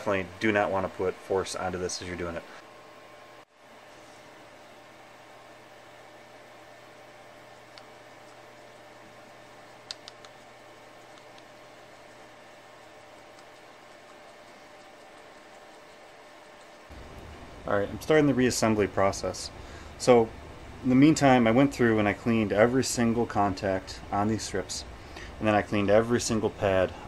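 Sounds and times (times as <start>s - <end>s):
room hum and hiss: 0.0s - 27.0s
faint small clicks: 9.8s - 10.4s.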